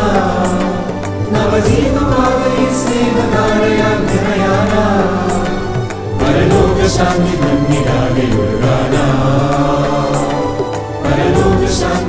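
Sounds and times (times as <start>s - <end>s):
instrumental accompaniment: 0.0s - 12.0s
mixed choir singing: 0.0s - 12.0s.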